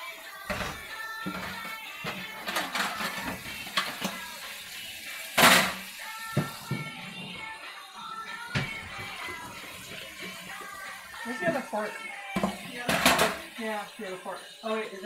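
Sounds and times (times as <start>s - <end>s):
background music with singing: 0.0s - 15.0s
dishes and cups clinking: 0.5s - 4.3s, 5.4s - 7.5s, 12.4s - 13.5s.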